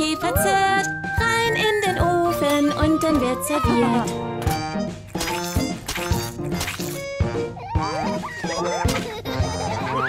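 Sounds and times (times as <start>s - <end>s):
children's song instrumental: 0.0s - 5.9s.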